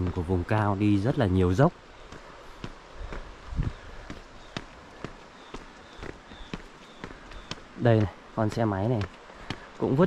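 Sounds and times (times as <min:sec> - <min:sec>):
footsteps on concrete: 0:02.0 - 0:10.0.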